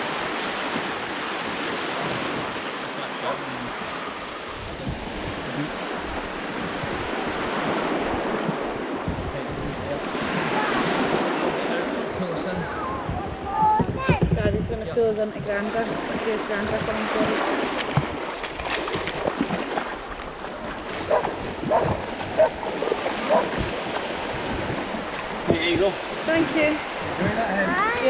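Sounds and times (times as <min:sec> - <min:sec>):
small waves washing around kayak: 0:00.0 - 0:28.0
wind buffeting microphone: 0:00.0 - 0:28.0.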